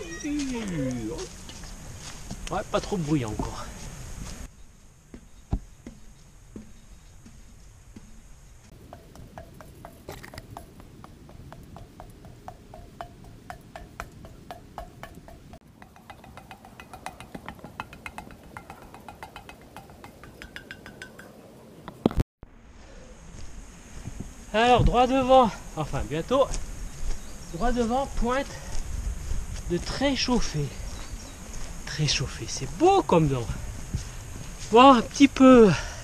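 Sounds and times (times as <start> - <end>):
footsteps on metal stairs: 5.1 - 21.3.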